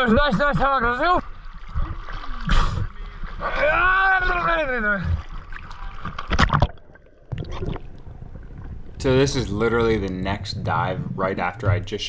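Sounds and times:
water splash: 1.3 - 10.2
man's long drawn-out shout: 3.5 - 5.1.

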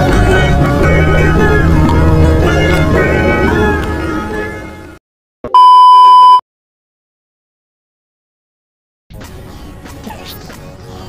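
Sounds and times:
censor bleep: 5.5 - 6.4.

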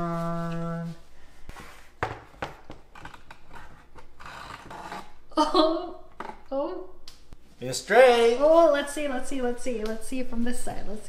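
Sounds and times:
person singing a note: 0.0 - 1.1.

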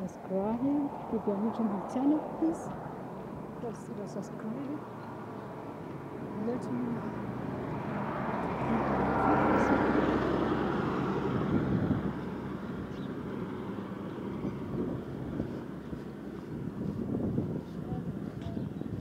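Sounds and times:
low steady road noise: 0.0 - 19.0
truck passing close by: 5.0 - 17.6.

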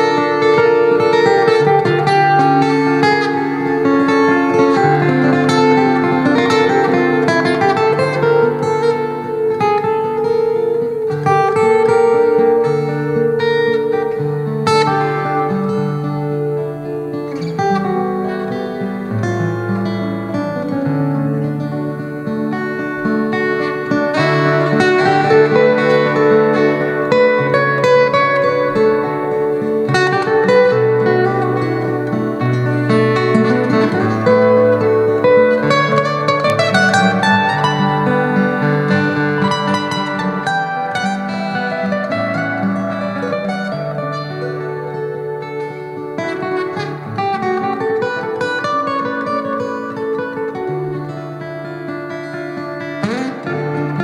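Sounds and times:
solo acoustic guitar: 0.0 - 54.0.

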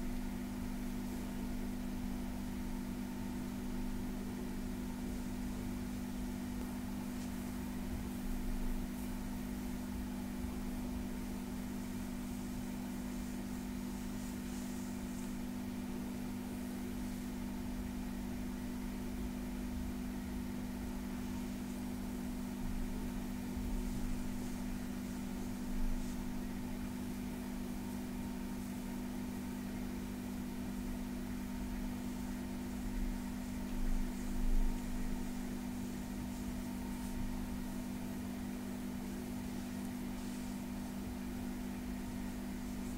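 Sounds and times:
steady low hum: 0.0 - 42.9.

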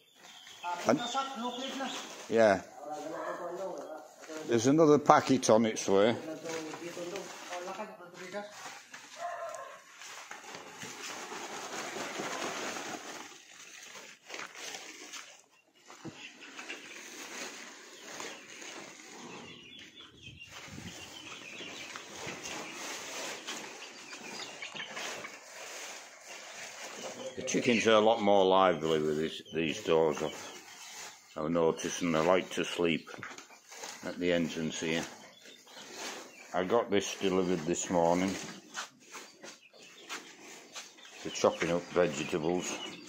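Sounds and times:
voices talking: 0.0 - 9.9, 16.0 - 43.0
chickens clucking: 0.0 - 43.0.

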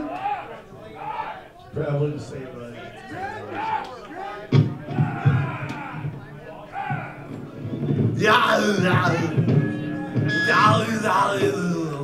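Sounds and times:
indistinct talking in a hall: 0.0 - 12.0.

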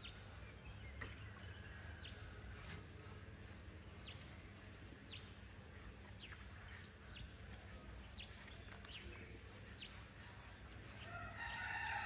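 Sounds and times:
bird chirping: 0.0 - 2.6, 3.9 - 12.0.

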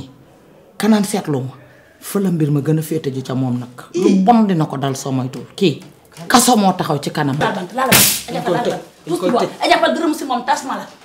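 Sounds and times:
sharp hiss-like burst: 7.9 - 8.3.

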